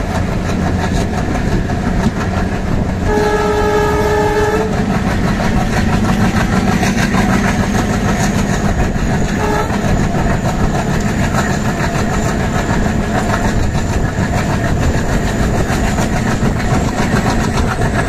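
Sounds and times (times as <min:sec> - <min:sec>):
diesel locomotive engine drone: 0:00.0 - 0:18.0
train wheels on rails: 0:00.0 - 0:18.0
locomotive horn: 0:03.0 - 0:04.9, 0:09.3 - 0:10.0.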